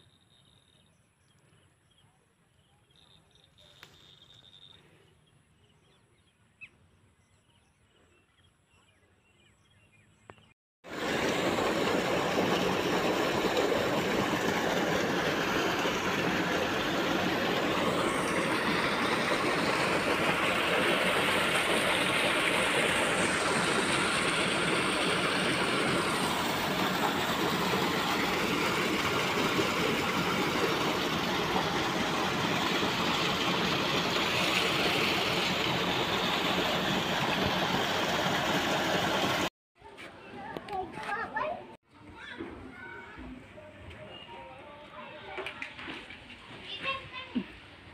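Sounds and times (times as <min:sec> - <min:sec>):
water gushing into a pool: 0:10.8 - 0:39.5.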